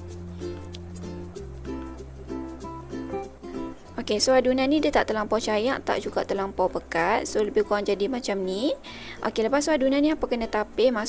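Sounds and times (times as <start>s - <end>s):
light background tune: 0.0s - 11.0s.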